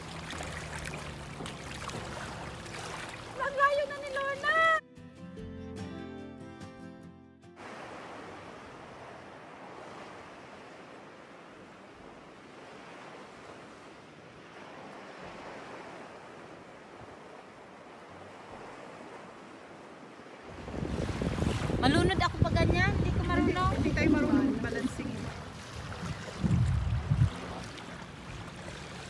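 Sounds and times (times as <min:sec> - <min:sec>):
small waves lapping on shore: 0:00.0 - 0:04.8, 0:07.6 - 0:29.0
music: 0:04.8 - 0:07.6
wind buffeting microphone: 0:20.4 - 0:29.0.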